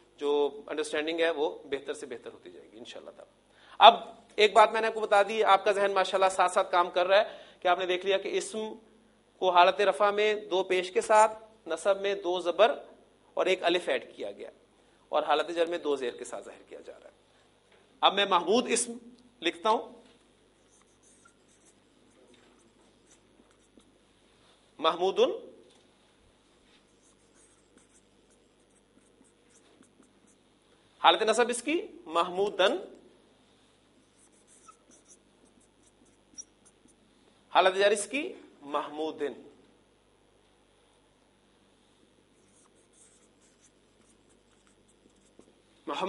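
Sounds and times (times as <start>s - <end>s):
marker pen scratching on whiteboard: 20.6s - 24.0s, 26.8s - 30.5s, 33.9s - 37.0s, 42.4s - 45.6s.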